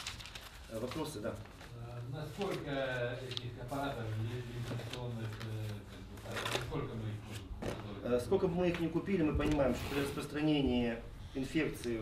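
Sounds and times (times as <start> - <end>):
papers rustling: 0.0 - 10.3.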